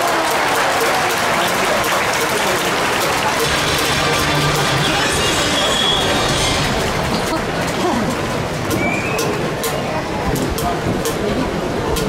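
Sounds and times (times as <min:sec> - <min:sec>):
stadium crowd applauding and cheering: 0:00.0 - 0:10.0.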